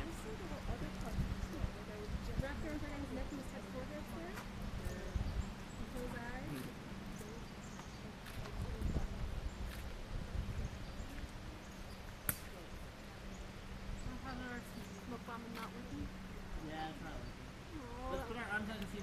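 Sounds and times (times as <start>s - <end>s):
distant voices talking: 0.0s - 9.7s, 10.7s - 19.0s
steady low hum: 0.0s - 19.0s.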